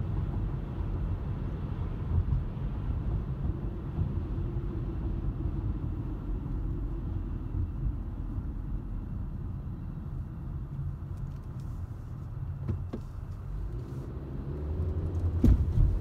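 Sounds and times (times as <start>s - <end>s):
road and engine rumble: 0.0s - 16.0s.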